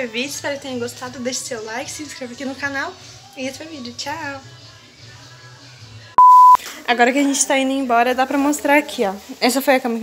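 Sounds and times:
short electronic beep: 0:06.2 - 0:06.6.

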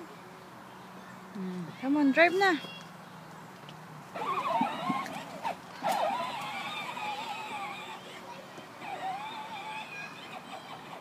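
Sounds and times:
toy electric motor whining: 0:04.1 - 0:11.0.

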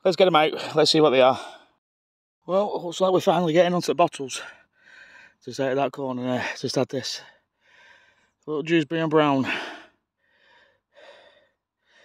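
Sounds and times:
man breathing faintly: 0:04.4 - 0:05.4, 0:07.2 - 0:08.4, 0:09.4 - 0:12.0.

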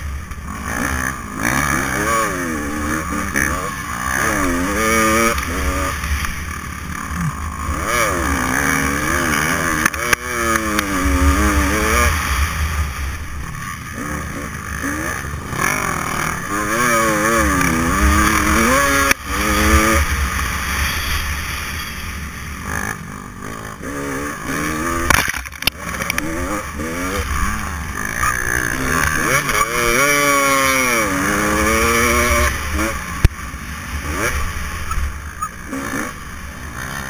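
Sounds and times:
dirt bike engine revving: 0:00.0 - 0:37.0.

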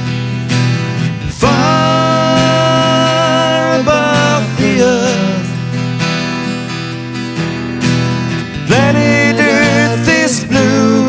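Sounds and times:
acoustic guitars strumming: 0:00.0 - 0:11.0
person singing: 0:01.3 - 0:05.7, 0:08.6 - 0:11.0.

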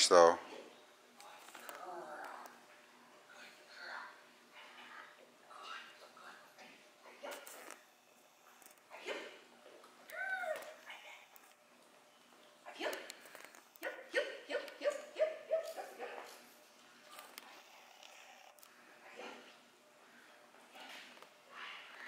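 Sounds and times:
dog yipping: 0:14.8 - 0:16.3.

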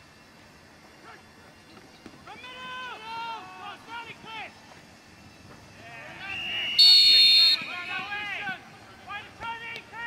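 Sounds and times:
faint background noise: 0:00.0 - 0:10.0.

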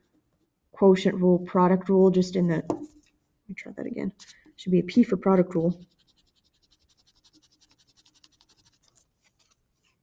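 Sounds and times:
felt-tip pen scratching on paper: 0:05.8 - 0:10.0.

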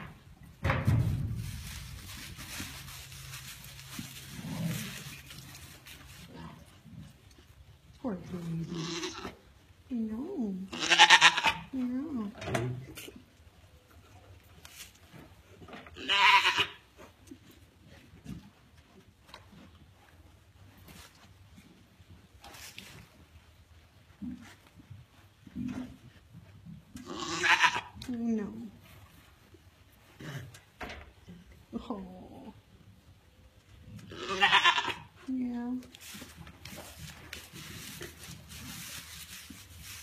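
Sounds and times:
goat bleating: 0:08.7 - 0:09.3, 0:10.7 - 0:11.7, 0:16.0 - 0:16.8, 0:27.0 - 0:28.0, 0:34.1 - 0:35.1.

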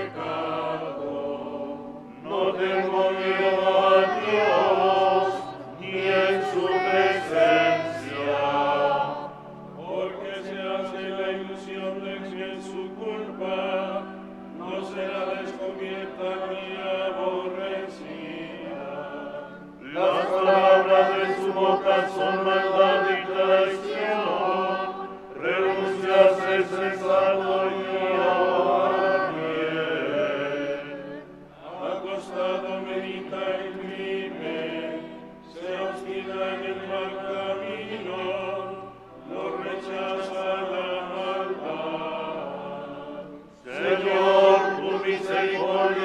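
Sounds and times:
choir chanting in unison: 0:00.0 - 0:46.0.

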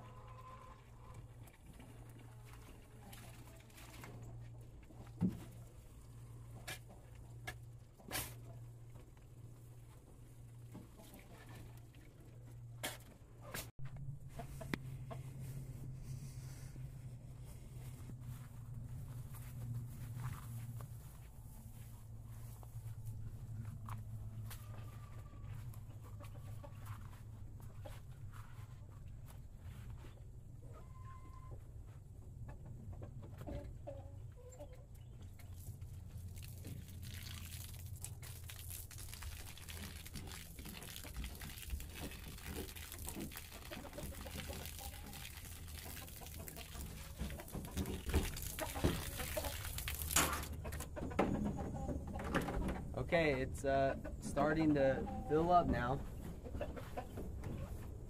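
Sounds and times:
chickens clucking: 0:00.0 - 0:07.7, 0:10.6 - 0:11.9, 0:13.4 - 0:15.9, 0:23.3 - 0:35.6, 0:43.4 - 0:58.0
water hissing from hose into tank: 0:36.4 - 0:50.5.

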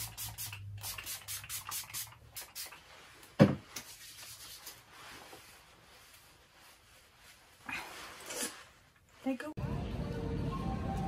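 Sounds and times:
spray bottle hissing: 0:00.0 - 0:02.8.

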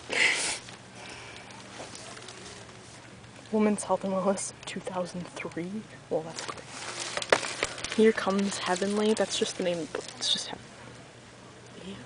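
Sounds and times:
faint steady hum: 0:00.0 - 0:12.0
sharp sniff: 0:00.1 - 0:00.7.

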